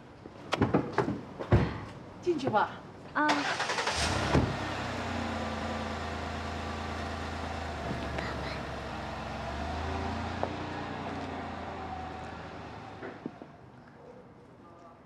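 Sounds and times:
engine humming: 3.4 - 13.6.

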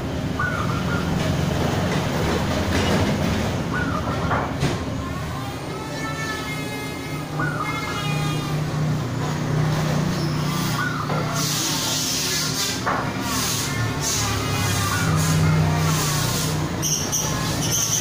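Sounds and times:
traffic noise: 0.0 - 18.0
doves cooing: 0.1 - 5.7, 6.8 - 12.6
vehicle passing by: 7.1 - 18.0.

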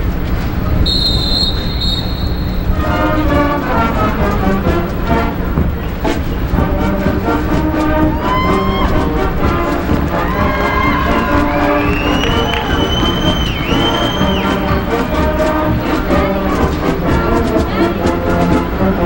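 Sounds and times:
high steady whistle tone: 0.8 - 3.2, 10.3 - 15.4
marching band playing: 0.8 - 19.0.

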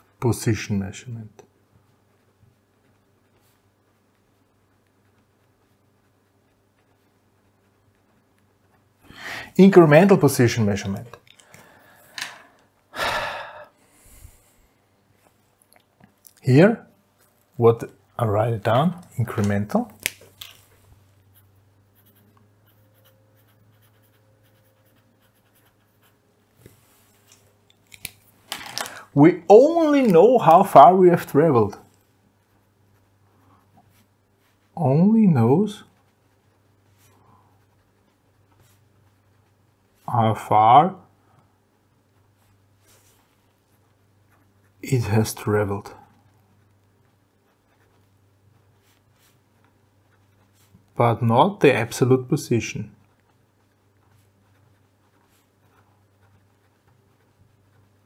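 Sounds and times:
pen scratching on paper: 21.3 - 26.2, 46.2 - 50.7, 53.0 - 58.0.

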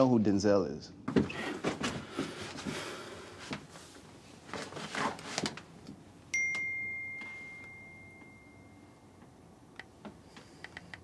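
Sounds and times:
phone notification chime: 6.3 - 9.1.

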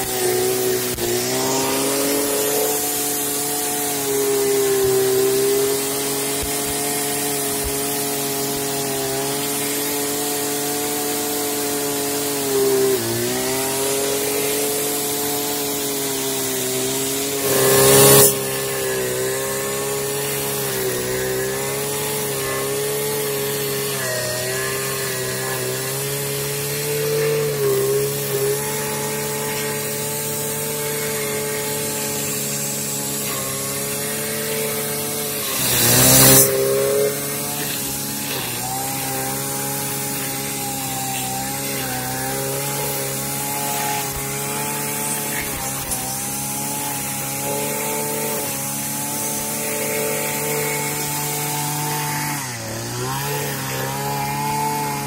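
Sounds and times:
brush cutter engine running: 0.0 - 55.0.

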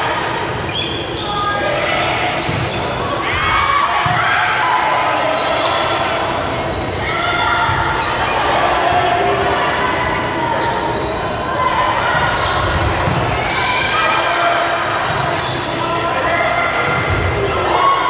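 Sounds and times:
players calling out: 0.0 - 18.0
spectators talking and shouting: 0.0 - 18.0.

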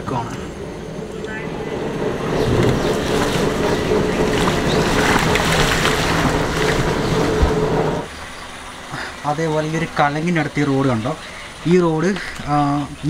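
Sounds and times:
car engine running: 0.0 - 8.1
tyres on rough road: 0.0 - 13.0
wind on microphone: 0.8 - 8.1.

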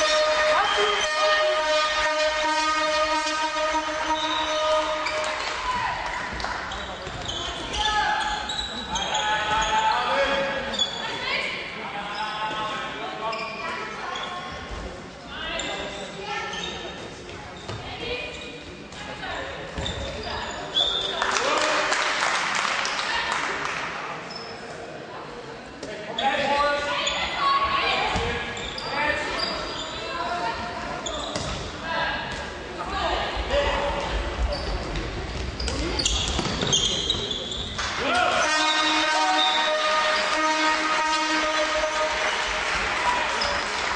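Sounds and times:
ball bouncing on court floor: 31.3 - 31.7, 35.4 - 37.4.

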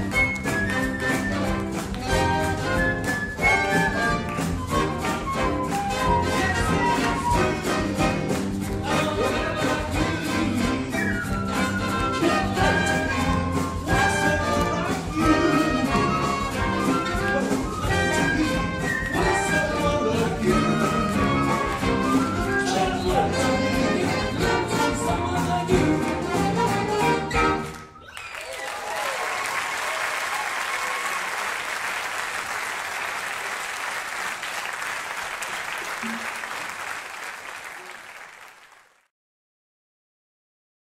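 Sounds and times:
audience applauding: 0.0 - 25.4, 26.0 - 39.1
jazz big band playing swing: 0.0 - 27.9.

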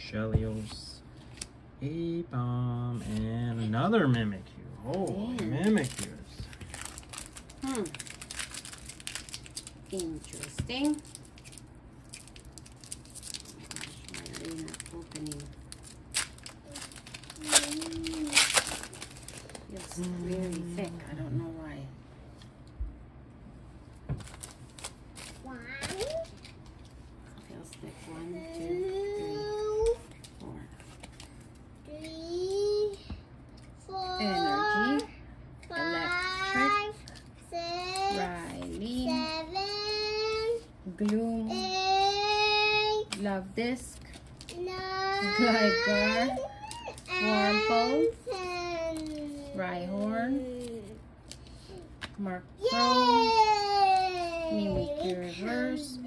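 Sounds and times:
foil wrapper crinkling: 5.0 - 21.2, 24.2 - 27.1, 44.0 - 55.3
loud foil rips: 5.6 - 20.9, 24.2 - 26.6.

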